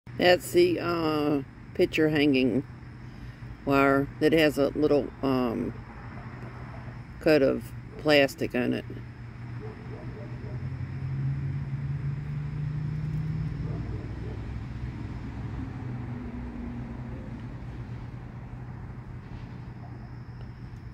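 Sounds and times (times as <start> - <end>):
low engine hum: 0.1 - 20.9.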